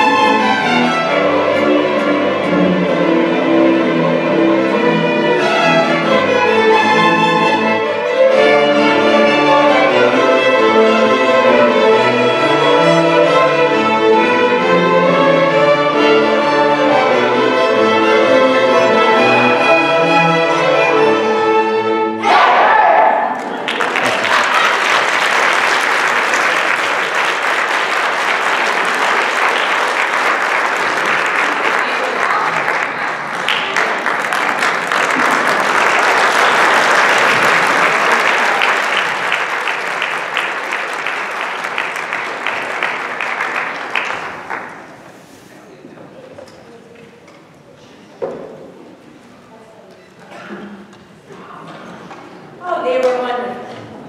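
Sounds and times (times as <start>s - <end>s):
string band with accordion: 0.0s - 22.2s
audience applauding: 23.3s - 45.1s.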